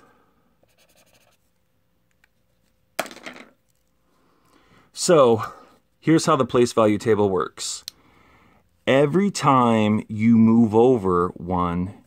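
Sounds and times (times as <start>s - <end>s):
felt-tip marker scratching on paper: 0.6s - 1.5s.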